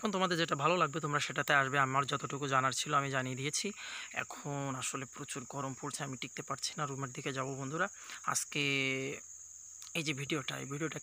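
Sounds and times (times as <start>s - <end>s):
man talking: 0.0s - 9.2s, 9.8s - 11.0s
high-pitched insect drone: 0.0s - 11.0s.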